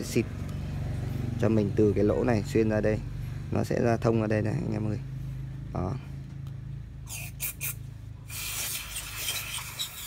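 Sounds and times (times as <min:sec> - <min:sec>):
aerosol spray hissing: 0:07.1 - 0:10.0.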